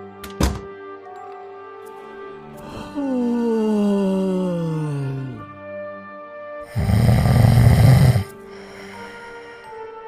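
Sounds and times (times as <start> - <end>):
loud snore: 6.6 - 8.4.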